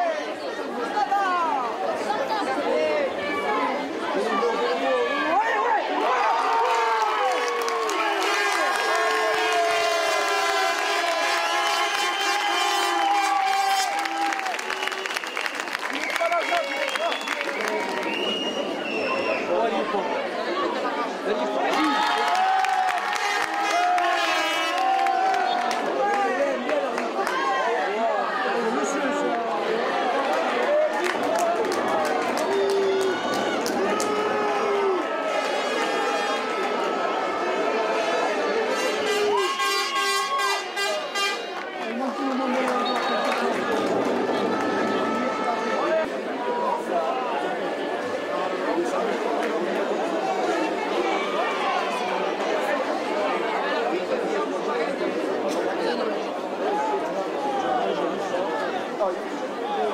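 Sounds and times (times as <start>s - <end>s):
crowd noise: 0.0s - 59.9s.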